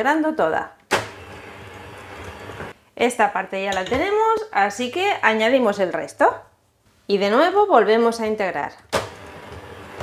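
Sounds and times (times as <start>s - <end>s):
electric hand mixer running: 1.2s - 2.7s, 9.2s - 10.0s.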